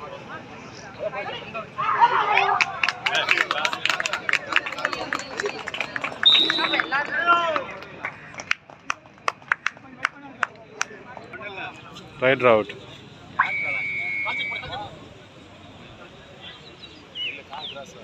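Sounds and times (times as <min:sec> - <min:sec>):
people clapping: 0:02.2 - 0:11.3.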